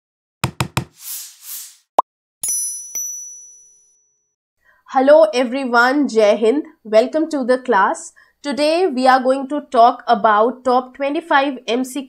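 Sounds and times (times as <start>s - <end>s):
sharp knocks: 0.4s - 1.0s
whooshes: 0.9s - 1.9s.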